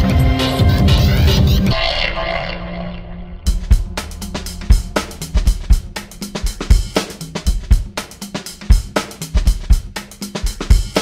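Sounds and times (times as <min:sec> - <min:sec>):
dense loud music: 0:00.0 - 0:11.0
sustained tone: 0:01.7 - 0:08.6.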